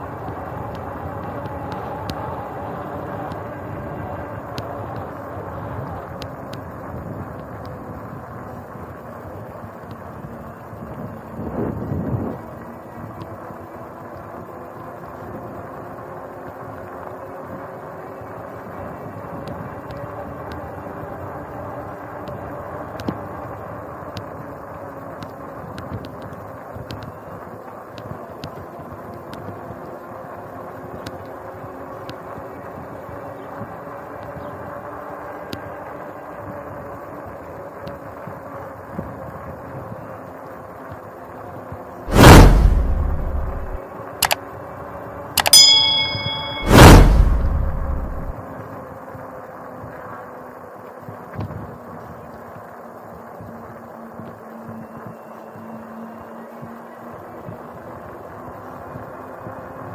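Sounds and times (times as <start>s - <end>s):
bicycle tyres on concrete: 0.0s - 21.0s
wind gust on microphone: 42.1s - 43.8s.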